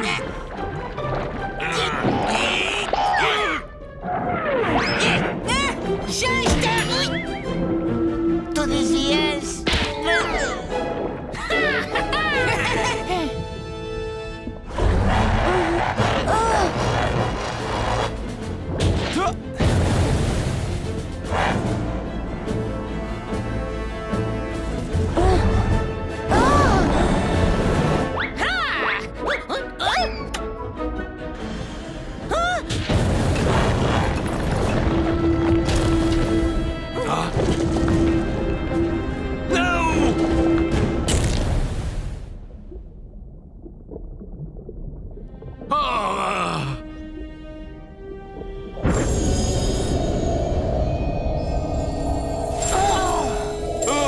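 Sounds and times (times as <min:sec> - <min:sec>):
dramatic action score: 0:00.0 - 0:42.7, 0:45.1 - 0:54.0
low rumble: 0:40.3 - 0:45.7
ominous music tones: 0:43.0 - 0:54.0.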